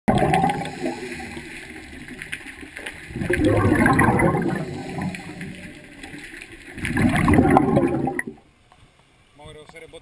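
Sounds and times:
air bubbles underwater: 0.1 - 8.4.

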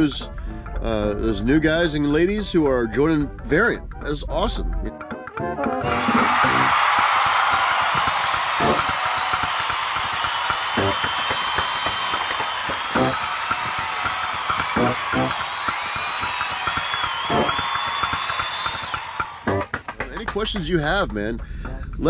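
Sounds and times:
crowd clapping and cheering: 5.8 - 20.4
wavering whistles: 7.7 - 19.5.

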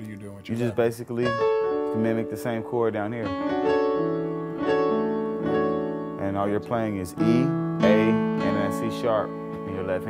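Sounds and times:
keyboard playing gospel chords: 0.6 - 10.0.

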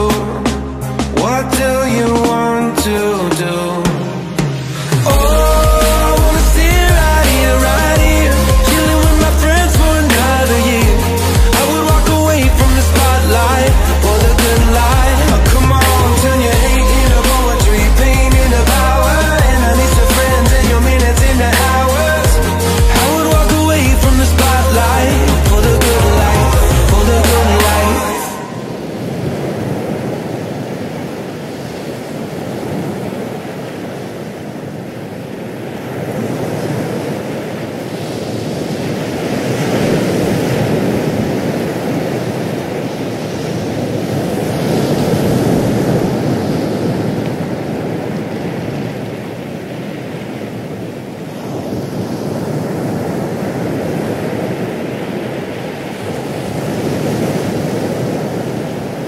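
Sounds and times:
ocean waves washing in: 0.0 - 59.0.

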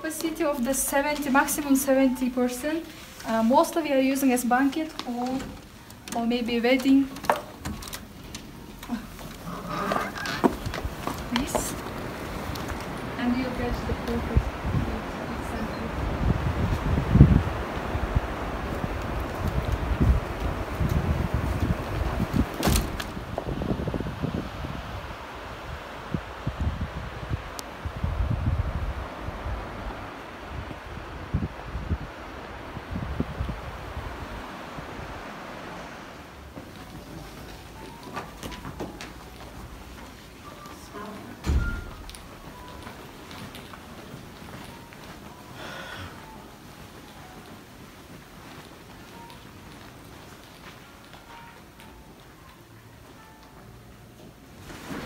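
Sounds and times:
wind buffeting microphone: 10.4 - 35.8.

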